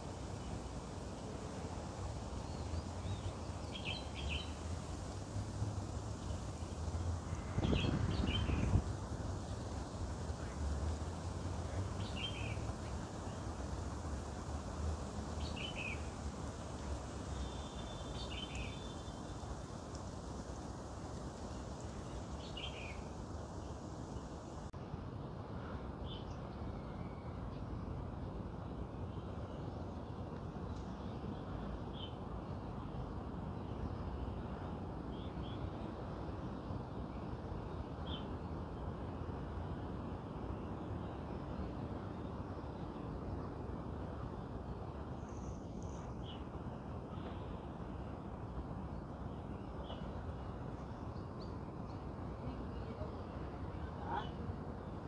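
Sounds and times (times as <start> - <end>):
outdoor background hiss: 0.0 - 55.0.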